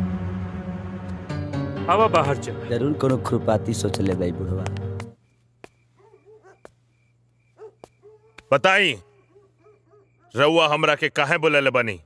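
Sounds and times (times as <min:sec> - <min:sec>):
faint dog-like animal calls: 0:06.0 - 0:06.7, 0:07.6 - 0:10.5.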